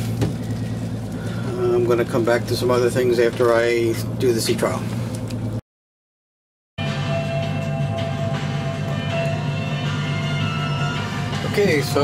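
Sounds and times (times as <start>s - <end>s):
low engine hum: 0.0s - 5.6s
music playing on radio: 6.8s - 12.0s.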